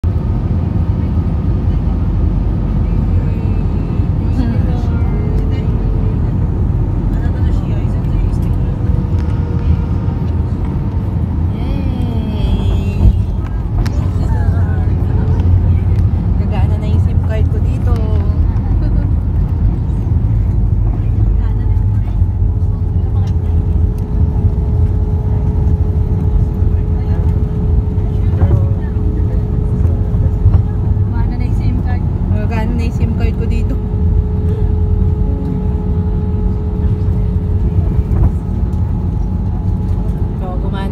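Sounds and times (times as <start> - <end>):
airliner engine and airflow rumble: 0.0 - 40.9.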